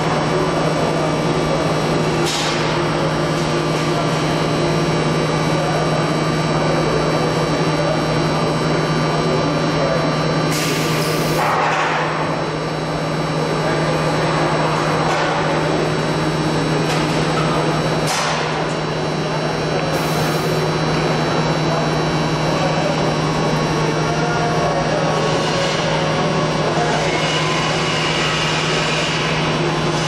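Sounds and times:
machine hum with low drone: 0:00.0 - 0:30.0.

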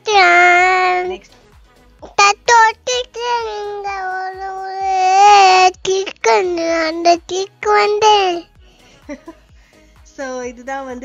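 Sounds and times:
girl singing unaccompanied: 0:00.0 - 0:01.2, 0:02.0 - 0:08.5.

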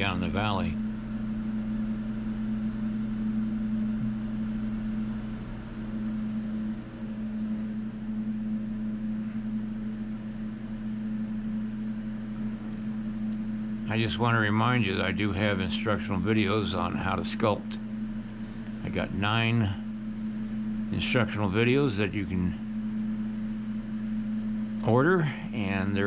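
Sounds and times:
machine hum: 0:00.0 - 0:26.0.

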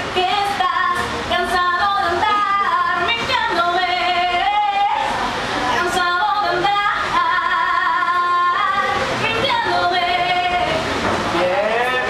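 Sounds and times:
woman singing: 0:00.0 - 0:05.2, 0:05.8 - 0:10.8.

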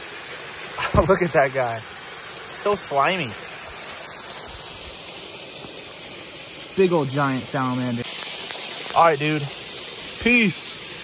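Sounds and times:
small waterfall rushing: 0:00.0 - 0:11.0.

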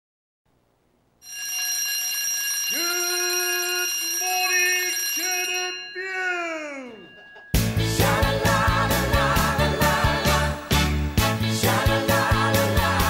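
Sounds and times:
alarm clock bell ringing: 0:01.2 - 0:09.1
person groaning: 0:06.0 - 0:07.1.

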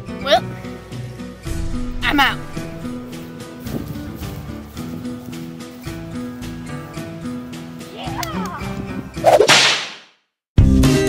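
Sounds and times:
music: 0:00.0 - 0:09.4, 0:10.6 - 0:11.0
whip crack: 0:09.2 - 0:10.1.

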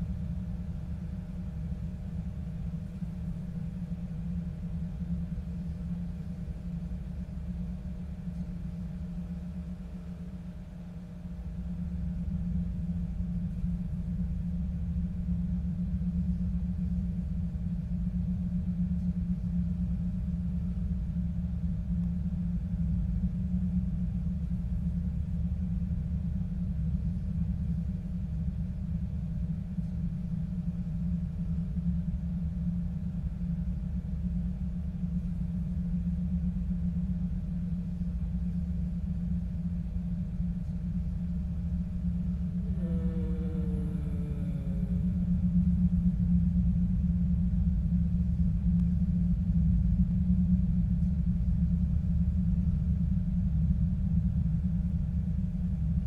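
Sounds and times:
deep rumbling drone: 0:39.4 - 0:48.4.

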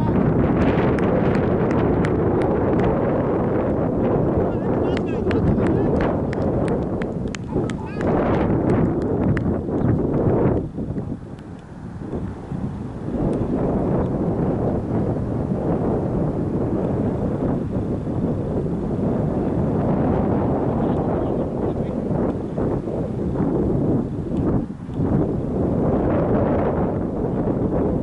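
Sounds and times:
distant voices: 0:00.0 - 0:10.1
wind buffeting microphone: 0:00.0 - 0:28.0.

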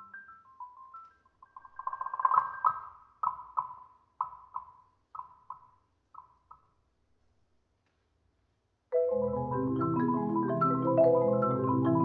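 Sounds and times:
high marimba notes: 0:08.9 - 0:12.0.

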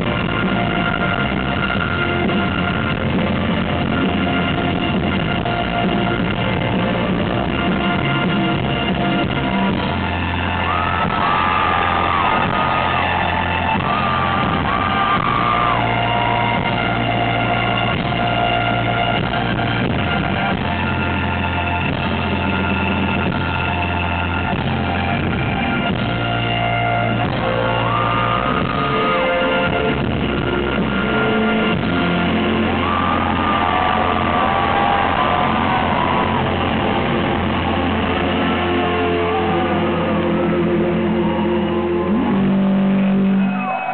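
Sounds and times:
rock band droning notes: 0:00.0 - 0:43.9.

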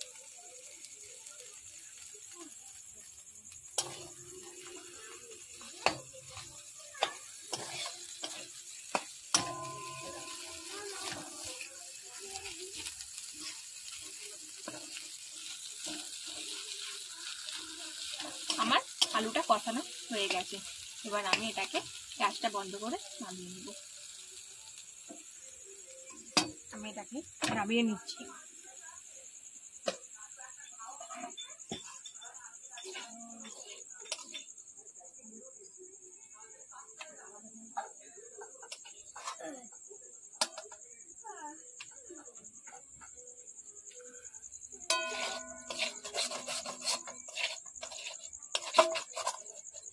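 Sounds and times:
light sizzle: 0:00.0 - 0:34.7, 0:36.8 - 0:49.9
spoon scraping metal pan: 0:03.6 - 0:24.2, 0:31.1 - 0:34.5, 0:44.9 - 0:49.9
spoon clinking on pan: 0:05.6 - 0:11.3, 0:44.9 - 0:47.5.

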